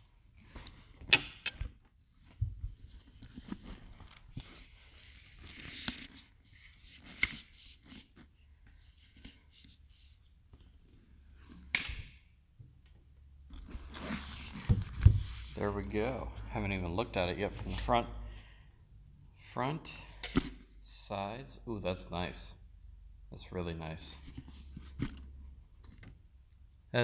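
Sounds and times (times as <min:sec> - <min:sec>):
helmet bag rustling and sliding: 0:13.6 - 0:15.9.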